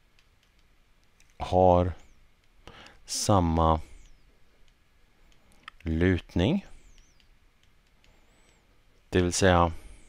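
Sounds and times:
stylus tapping tablet screen: 0.1 - 3.0, 6.8 - 8.6
man speaking: 1.4 - 2.1, 3.1 - 4.0, 5.8 - 6.8, 9.1 - 9.8.

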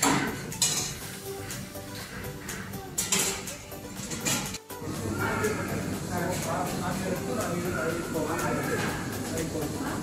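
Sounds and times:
dishes and cutlery clinking: 0.0 - 2.1, 2.9 - 5.5
soft background music: 0.0 - 10.0.

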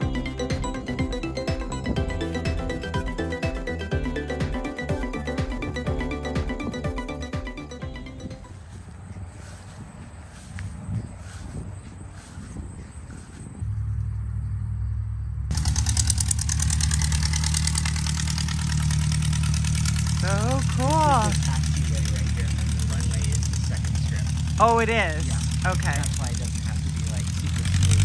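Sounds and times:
small airplane engine drone: 13.0 - 28.0.

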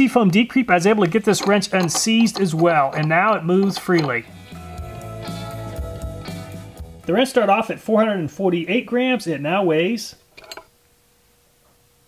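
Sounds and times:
wrench clattering on plastic scale: 0.8 - 4.3, 10.3 - 10.7.

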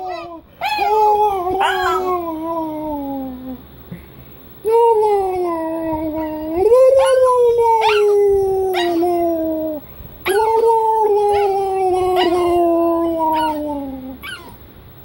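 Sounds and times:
small dog howling: 0.0 - 3.6, 4.9 - 14.6.

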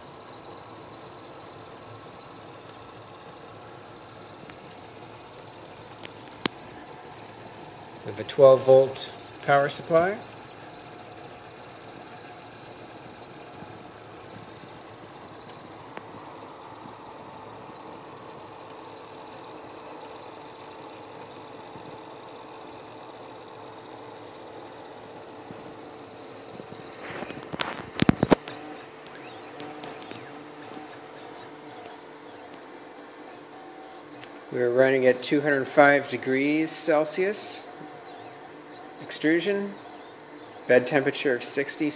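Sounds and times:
printer motors whining and humming: 0.0 - 41.9.

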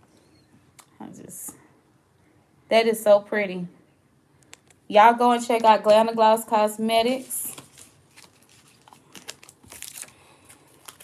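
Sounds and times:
plastic bags crinkling: 7.0 - 11.0.

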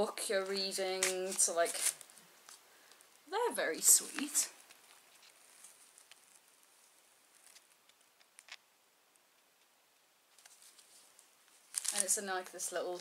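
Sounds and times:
plastic wrapping rustling: 0.4 - 3.2, 3.8 - 8.6, 10.3 - 13.0
small clicks: 7.4 - 9.7.

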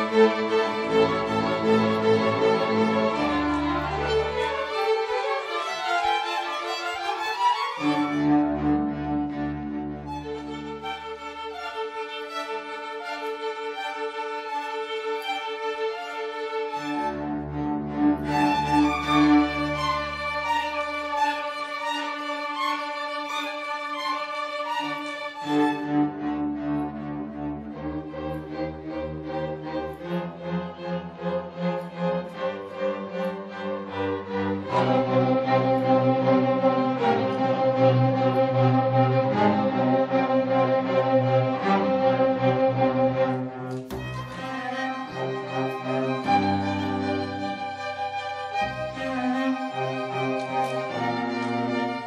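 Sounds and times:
string orchestra playing: 0.0 - 52.0.

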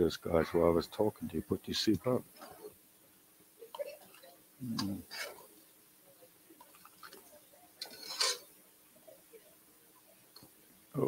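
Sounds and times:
ladle scraping pot: 5.0 - 5.5, 6.6 - 8.6.

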